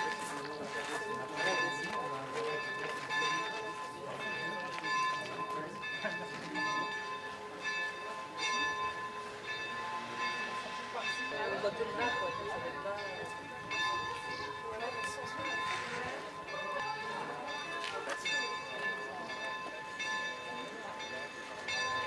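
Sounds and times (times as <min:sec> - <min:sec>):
church bells pealing: 0:00.0 - 0:22.0.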